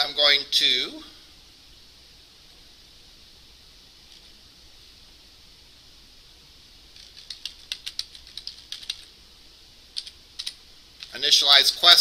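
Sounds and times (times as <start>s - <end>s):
computer keyboard typing: 7.0s - 9.1s, 10.0s - 10.6s.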